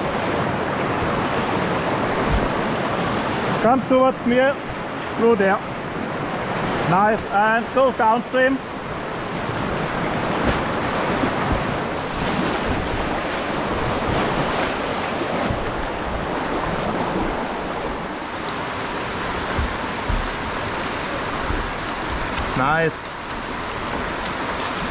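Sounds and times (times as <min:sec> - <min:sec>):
whitewater rushing: 0:00.0 - 0:24.9
low thumps: 0:08.8 - 0:24.4.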